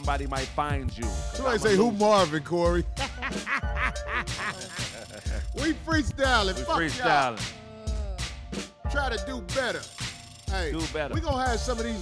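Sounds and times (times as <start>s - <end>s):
hip hop beat with deep bass: 0.0s - 12.0s
laughter in short bursts: 3.0s - 5.5s.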